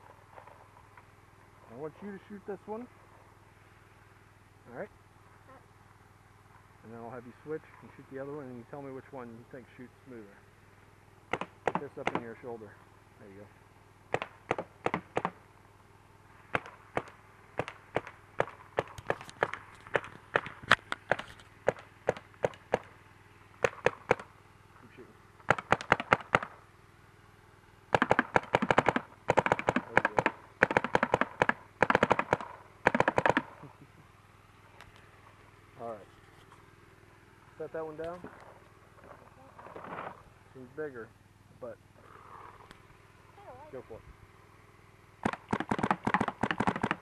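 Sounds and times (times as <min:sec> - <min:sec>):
paintball marker firing: 0:11.3 - 0:12.3, 0:14.1 - 0:15.4, 0:16.5 - 0:22.9, 0:23.6 - 0:24.3, 0:25.4 - 0:26.6, 0:27.9 - 0:33.7, 0:45.2 - 0:47.0.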